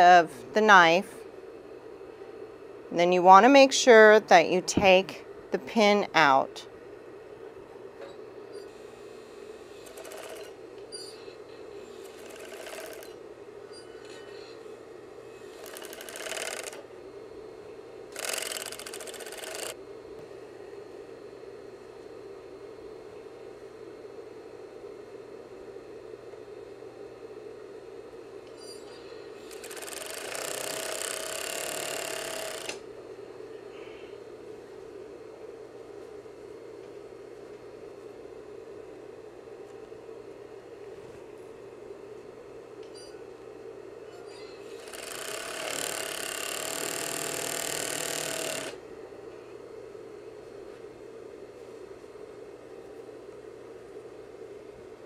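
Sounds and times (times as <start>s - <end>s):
steady hum: 0.0s - 55.0s
overlock machine stitching: 9.8s - 10.6s, 12.0s - 13.2s, 15.5s - 16.8s, 18.1s - 19.8s, 29.4s - 32.8s, 44.7s - 48.8s.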